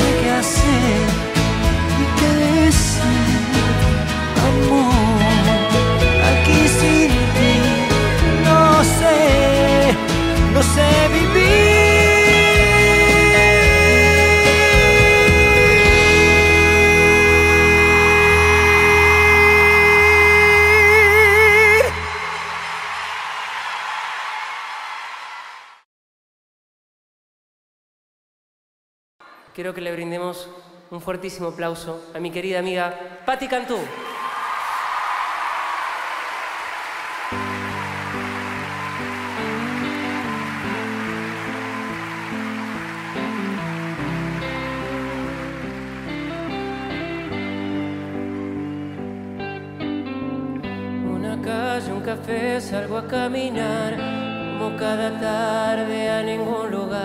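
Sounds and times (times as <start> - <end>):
live band playing: 0.0 - 23.1, 37.2 - 51.1
audience applause and cheering: 0.4 - 25.8, 33.9 - 49.9
man singing a long note: 6.2 - 22.1, 51.0 - 57.0.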